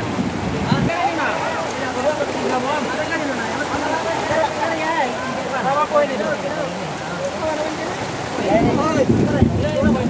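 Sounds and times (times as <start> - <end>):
heavy rain: 0.0 - 10.0
voices talking and calling: 0.5 - 10.0.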